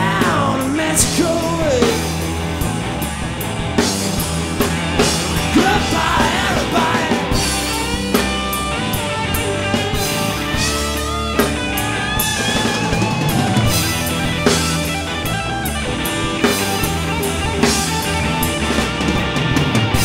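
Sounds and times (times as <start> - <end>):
rock band playing: 0.0 - 20.0
lead guitar bending notes: 1.4 - 20.0.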